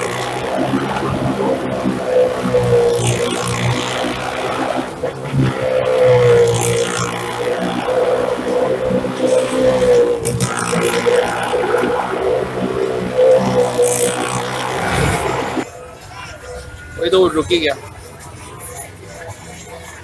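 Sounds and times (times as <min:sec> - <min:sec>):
engines droning at high revs: 0:00.0 - 0:15.7.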